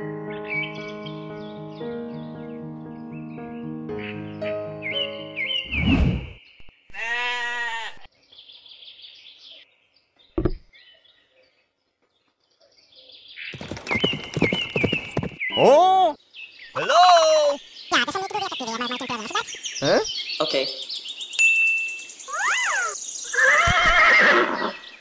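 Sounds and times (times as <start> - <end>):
background music: 0.0 - 5.7
sheep bleating: 6.9 - 8.1
thud: 10.4 - 10.7
high bird chirps: 17.7 - 24.0.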